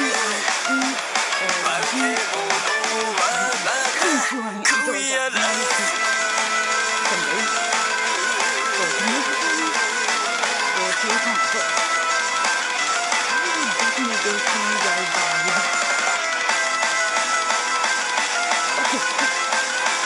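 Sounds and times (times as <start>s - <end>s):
rock song with electric guitar: 0.0s - 20.0s.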